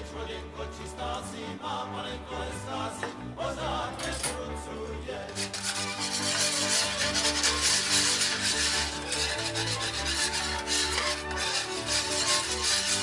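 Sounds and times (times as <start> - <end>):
background music: 0.0 - 13.0
fork scraping metal dish: 5.3 - 13.0.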